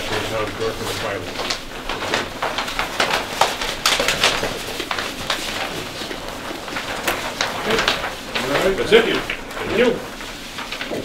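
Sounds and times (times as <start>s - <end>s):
low voices murmuring: 0.0s - 11.0s
paper sheets rustling: 0.0s - 11.0s.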